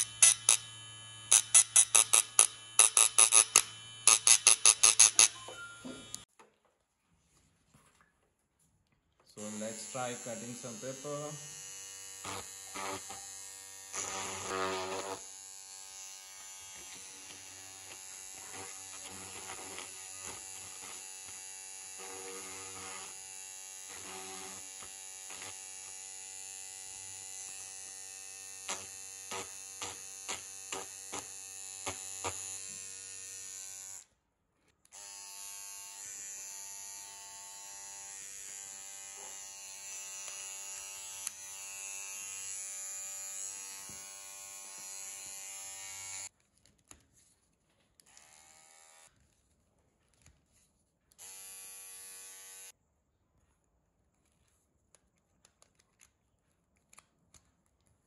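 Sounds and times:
beard trimmer buzzing: 0:00.0 - 0:06.3, 0:09.4 - 0:34.1, 0:34.9 - 0:46.3, 0:48.0 - 0:49.1, 0:51.2 - 0:52.8.

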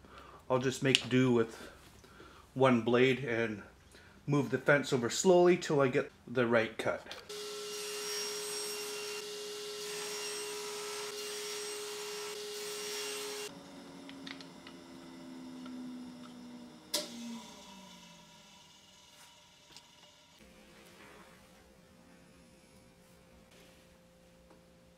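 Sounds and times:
table saw running and spinning down: 0:07.3 - 0:20.4.

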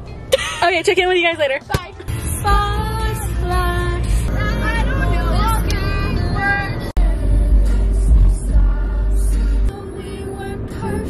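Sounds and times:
music playing: 0:00.0 - 0:11.0
car cabin rumble: 0:00.6 - 0:11.0.

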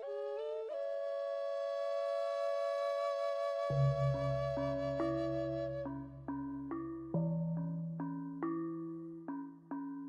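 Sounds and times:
flute-like long note: 0:00.0 - 0:06.2.

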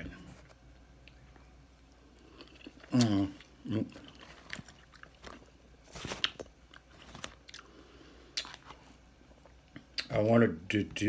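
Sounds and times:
person chewing food: 0:00.7 - 0:10.1.

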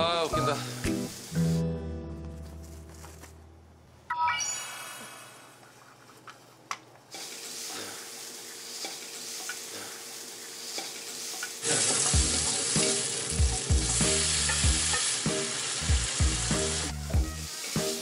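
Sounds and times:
food sizzling in a wok: 0:00.0 - 0:01.6, 0:07.2 - 0:18.0.

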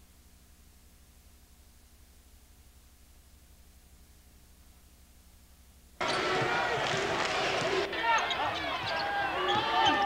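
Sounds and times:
murmur of crowd voices: 0:06.0 - 0:10.0
sneakers squeaking: 0:06.0 - 0:10.0.

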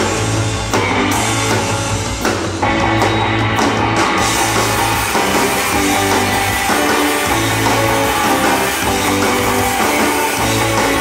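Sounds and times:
live surf rock band: 0:00.0 - 0:11.0.

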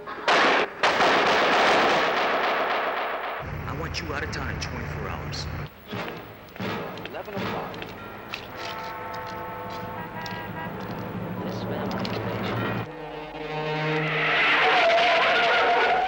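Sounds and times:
car engine running: 0:03.4 - 0:08.3, 0:09.6 - 0:14.6
film music: 0:03.4 - 0:16.0.

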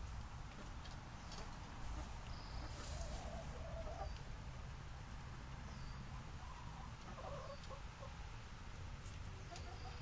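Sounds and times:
hens clucking: 0:00.5 - 0:04.2, 0:06.4 - 0:08.2, 0:09.5 - 0:10.0.

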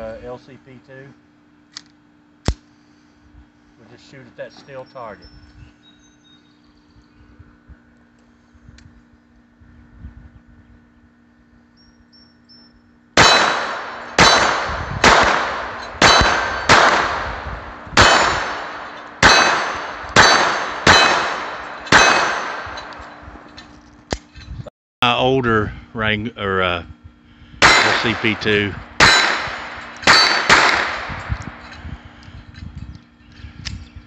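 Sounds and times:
pistol shots: 0:13.2 - 0:23.0, 0:27.6 - 0:31.2.

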